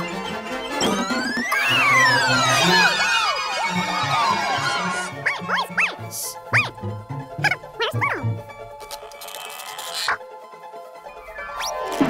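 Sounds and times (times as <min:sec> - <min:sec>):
cartoon dog barking and yelping: 0:05.1 - 0:08.4, 0:09.9 - 0:10.2
background music with low beat: 0:05.6 - 0:08.9.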